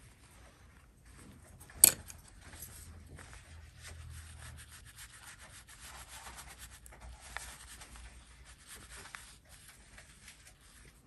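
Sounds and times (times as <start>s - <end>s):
brush rubbing on paper: 2.8s - 11.0s.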